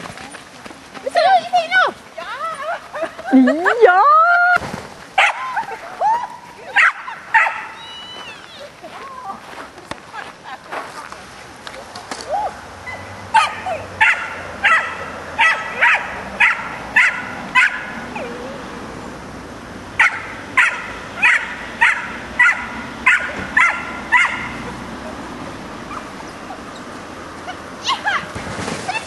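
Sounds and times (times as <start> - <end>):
dog barking: 5.2 - 5.4, 6.8 - 7.8, 12.9 - 18.0, 20.0 - 24.8.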